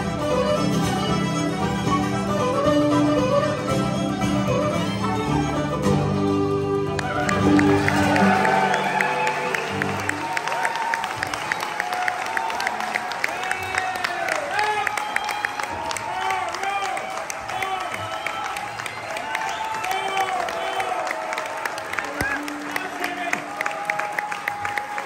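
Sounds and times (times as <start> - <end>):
audience applauding: 6.7 - 25.0
audience cheering and whooping: 6.9 - 25.0.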